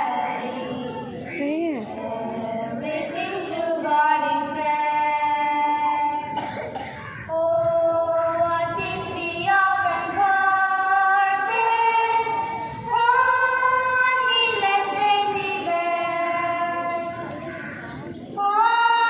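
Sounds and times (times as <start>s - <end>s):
girls singing together: 0.0s - 19.0s.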